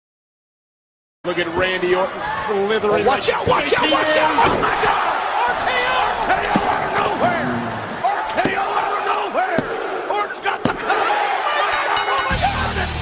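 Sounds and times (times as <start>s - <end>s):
young men yelling and whooping: 2.2s - 13.0s.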